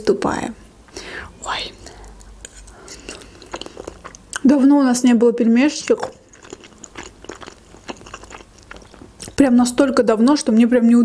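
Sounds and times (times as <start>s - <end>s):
close chewing mouth clicks: 2.2s - 4.4s, 6.2s - 9.4s.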